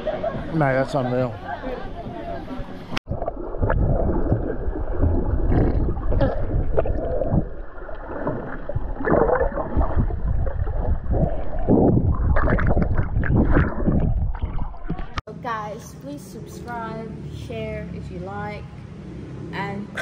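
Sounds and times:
water churning and bubbling underwater: 0:02.9 - 0:15.2.

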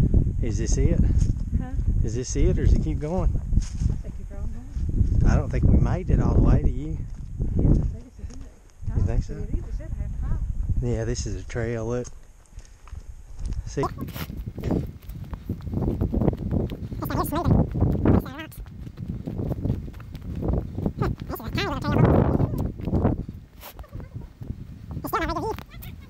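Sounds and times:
footsteps crunching through dry leaves: 0:12.2 - 0:17.0
person laughing: 0:21.0 - 0:22.7, 0:23.6 - 0:24.4, 0:25.1 - 0:26.0.

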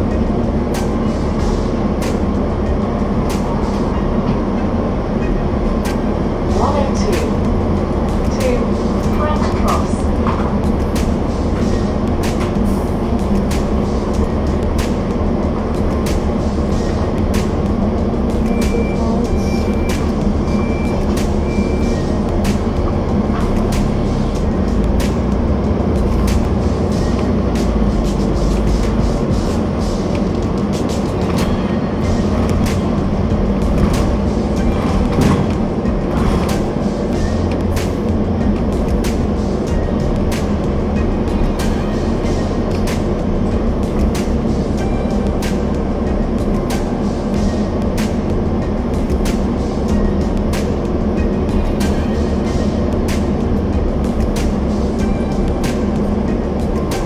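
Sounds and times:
bus engine humming: 0:00.0 - 0:57.0.

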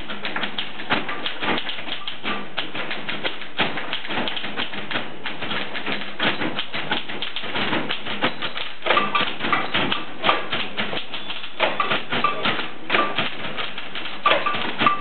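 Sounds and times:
typewriter keys clattering: 0:00.0 - 0:15.0.

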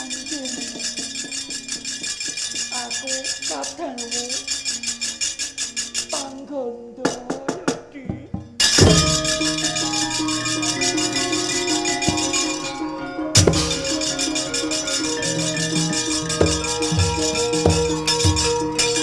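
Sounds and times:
rapid clattering strokes: 0:00.0 - 0:06.4, 0:08.6 - 0:19.0
metallophones ringing: 0:00.0 - 0:06.5, 0:08.4 - 0:19.0
low drum notes: 0:07.1 - 0:19.0.

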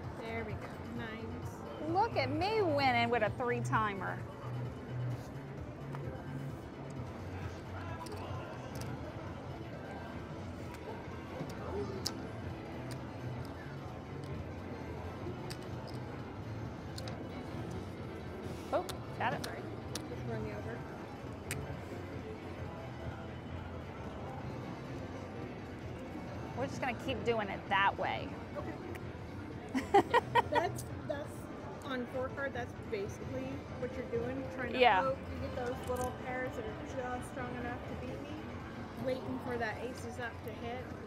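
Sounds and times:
background music: 0:00.0 - 0:41.0
murmur of distant voices: 0:00.0 - 0:41.0.

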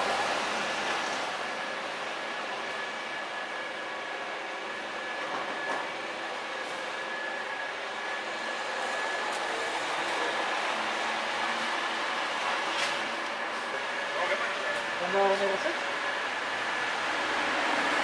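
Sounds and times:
steady mechanical hum: 0:00.0 - 0:18.0.

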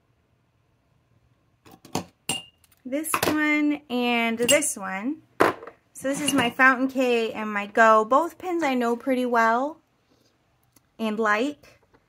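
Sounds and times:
person speaking: 0:06.0 - 0:09.8.

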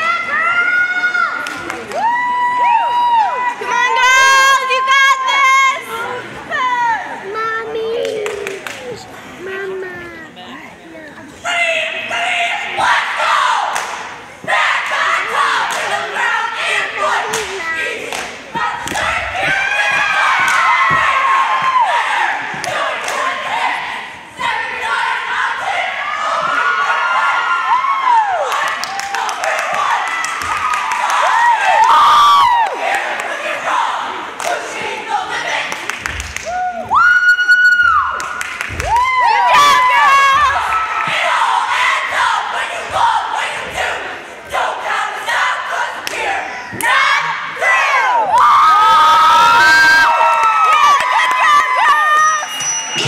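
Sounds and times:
crowd shouting and cheering: 0:00.0 - 0:10.0, 0:11.4 - 0:53.0
sharp claps: 0:18.1 - 0:19.1.

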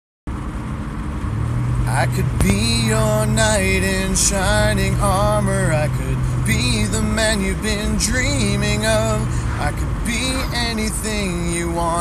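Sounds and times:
car cabin road and engine rumble: 0:00.3 - 0:12.0
steady low hum: 0:00.3 - 0:12.0.

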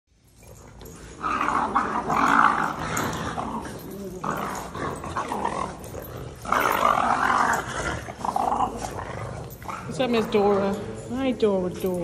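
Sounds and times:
dogs growling: 0:00.3 - 0:12.0.

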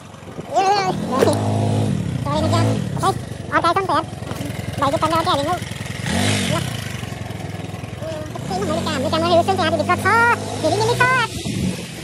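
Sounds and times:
vehicle engine revving: 0:00.0 - 0:12.0.

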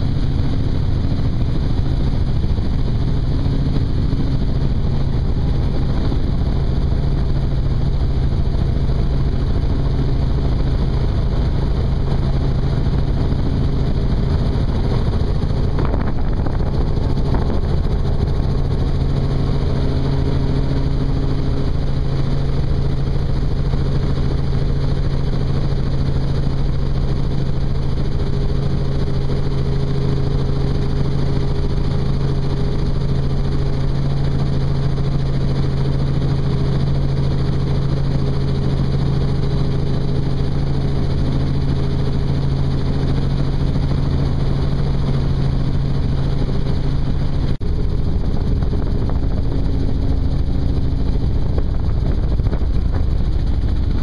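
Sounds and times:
helicopter rotor and engine drone: 0:00.0 - 0:54.0
wind rushing: 0:14.6 - 0:19.1.

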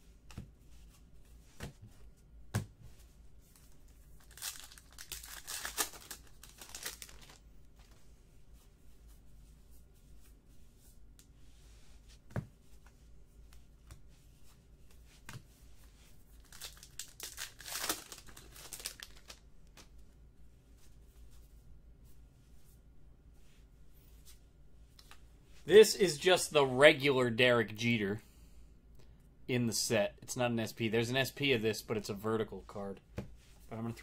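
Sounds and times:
foil wrapper tearing and crinkling: 0:04.2 - 0:07.4, 0:16.4 - 0:19.4.

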